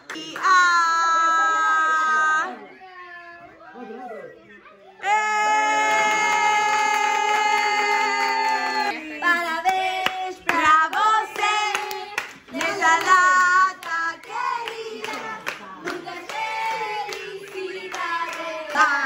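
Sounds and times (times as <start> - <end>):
hand-clapping: 6.2 - 19.0.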